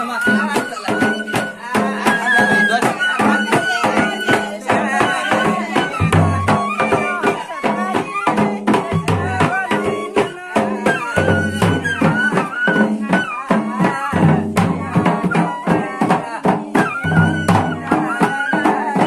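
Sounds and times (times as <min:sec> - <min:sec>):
steady drum beat: 0:00.0 - 0:19.0.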